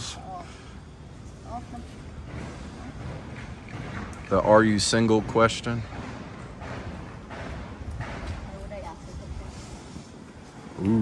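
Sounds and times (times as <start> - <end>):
wind rumbling on microphone: 6.6 - 11.0.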